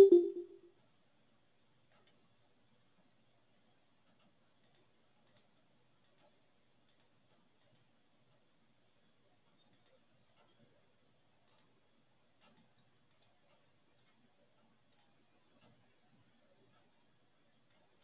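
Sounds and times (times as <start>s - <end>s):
soft irregular clicks: 1.8s - 18.0s.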